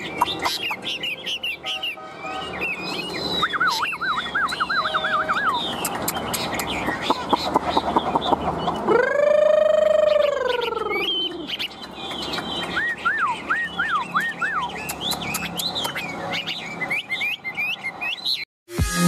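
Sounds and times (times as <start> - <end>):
bird singing whistled notes: 0.0 - 8.3, 9.7 - 18.5.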